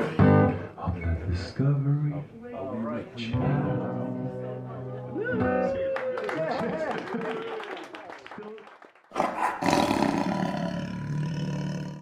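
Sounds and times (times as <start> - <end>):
faint pub chatter: 0.0 - 8.6
loud roar sound effect: 9.6 - 12.0.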